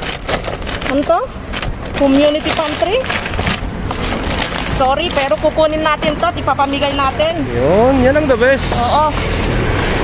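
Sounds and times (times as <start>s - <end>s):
packaging rustling: 0.0s - 6.4s.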